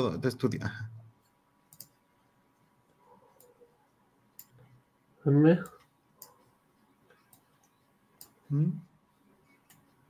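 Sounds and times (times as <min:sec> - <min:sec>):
computer mouse click: 0:01.2 - 0:02.0, 0:04.3 - 0:04.7, 0:07.1 - 0:08.4, 0:09.6 - 0:09.9.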